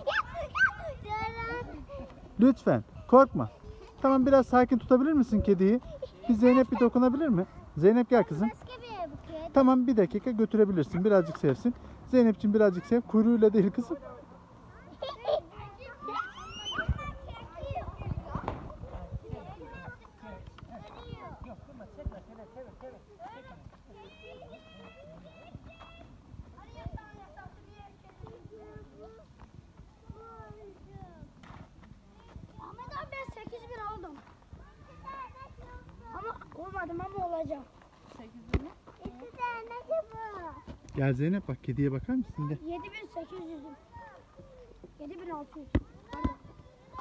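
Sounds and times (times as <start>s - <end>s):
children chattering and calling out: 0.0s - 47.0s.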